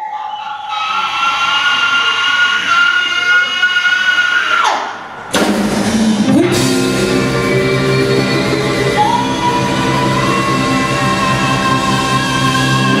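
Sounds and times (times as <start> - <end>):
blues band playing: 5.3 - 13.0.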